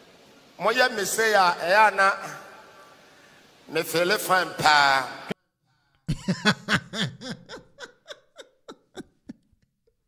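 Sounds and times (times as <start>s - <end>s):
person laughing: 6.1s - 10.0s.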